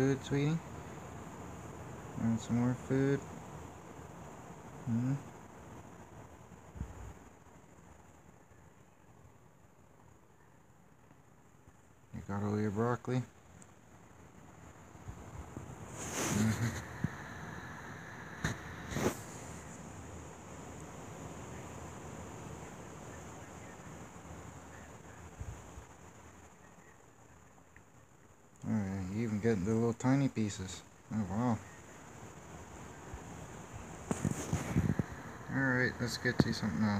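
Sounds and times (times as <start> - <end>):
steady background hiss: 0.0 - 36.9
close rustling: 13.4 - 20.4, 33.6 - 35.5.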